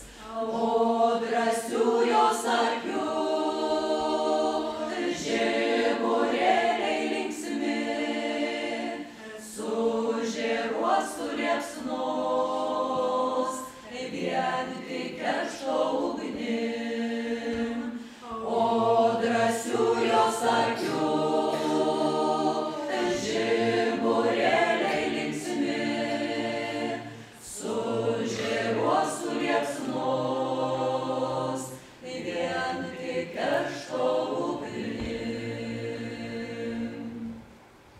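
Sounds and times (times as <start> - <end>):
choir singing a cappella: 0.0 - 37.7.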